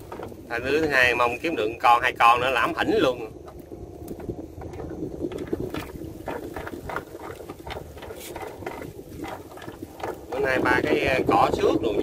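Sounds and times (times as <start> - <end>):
water dripping and splashing: 0.0 - 1.4, 2.4 - 12.0
wet netting rustling: 4.2 - 10.9.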